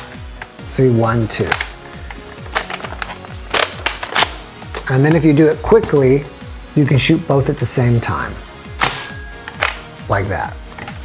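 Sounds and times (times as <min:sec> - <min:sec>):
toy gun sharp snaps: 0:08.8 - 0:09.8.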